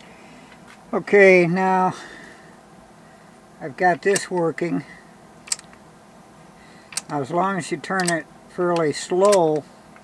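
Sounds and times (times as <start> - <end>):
sharp click: 5.5 - 5.8, 8.0 - 9.7.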